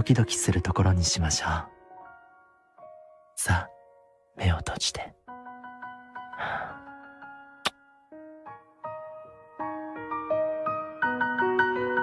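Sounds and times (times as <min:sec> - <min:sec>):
soft piano music: 0:00.0 - 0:12.0
breathy exhale: 0:06.4 - 0:06.9
kiss lip-smack: 0:07.6 - 0:07.8.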